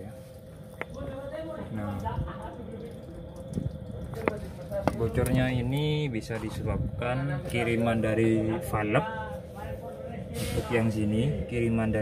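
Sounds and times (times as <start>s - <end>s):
faint steady hum: 0.0s - 12.0s
soapy water dripping and bubbling: 0.0s - 12.0s.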